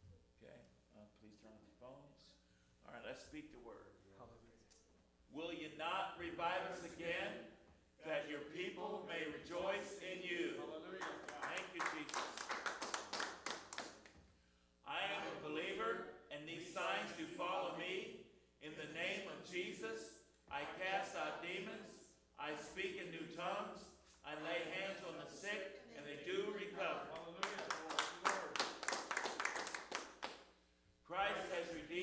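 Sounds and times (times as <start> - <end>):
hands clapping in rhythm: 11.0 - 14.3, 27.1 - 30.6.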